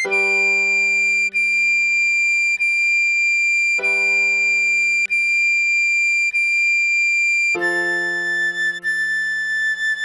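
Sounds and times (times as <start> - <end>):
keyboard chord: 3.8 - 5.0, 7.6 - 9.3
recorder playing a note: 3.8 - 5.1.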